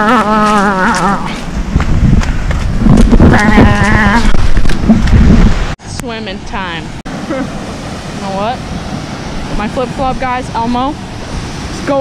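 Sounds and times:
waterfall rushing: 7.1s - 12.0s.

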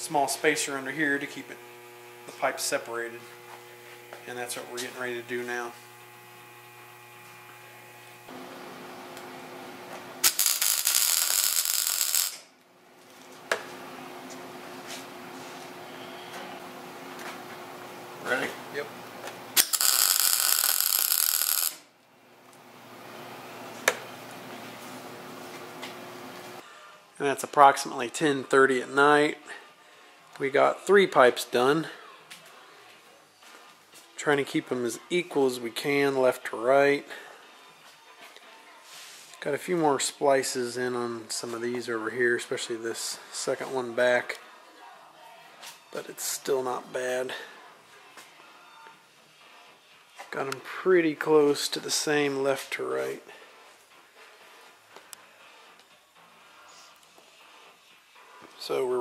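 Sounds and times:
electrical hum: 0.0s - 21.7s, 22.3s - 26.6s
arc welding burst: 0.4s - 8.4s, 10.2s - 12.5s, 19.5s - 21.9s.

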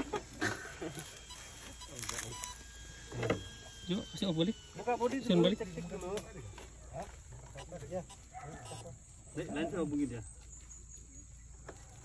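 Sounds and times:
high electric motor whine: 0.0s - 10.3s.

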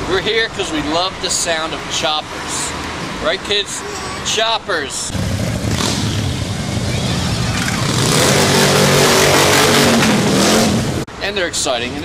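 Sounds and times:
motorcycles riding past: 5.1s - 11.0s.

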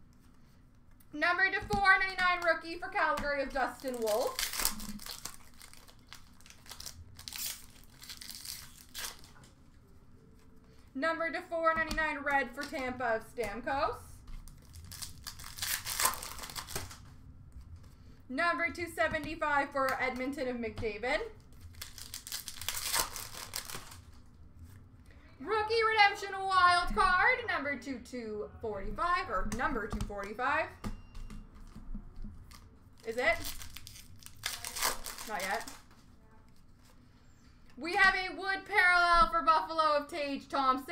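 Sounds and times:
card wrappers crinkling: 3.5s - 9.4s, 14.4s - 17.1s, 21.4s - 24.2s, 32.4s - 36.1s.

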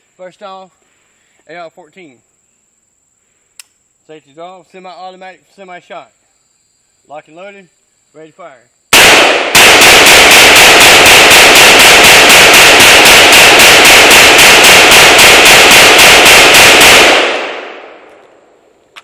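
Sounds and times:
rifle shots in rapid succession: 8.9s - 18.1s
gunshot echo: 8.9s - 18.6s.

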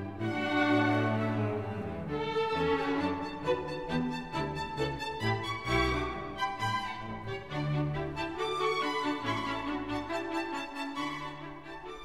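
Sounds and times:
violin and cello playing slow notes: 0.0s - 12.0s.

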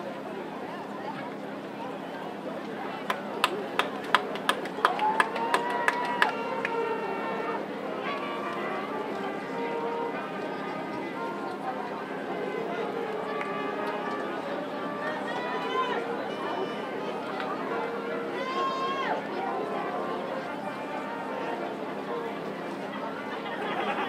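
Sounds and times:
crowd chatter: 0.0s - 24.0s.

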